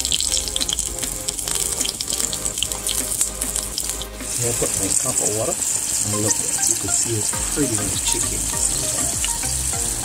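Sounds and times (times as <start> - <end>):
hot fat crackling: 0.0 - 10.0
water poured into hot oil: 0.0 - 10.0.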